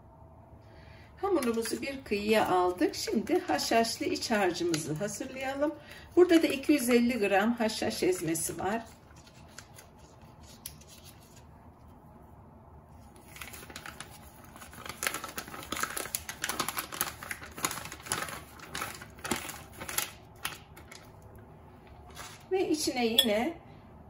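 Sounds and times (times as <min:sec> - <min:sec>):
plastic packet crinkling: 0:13.1 - 0:21.3.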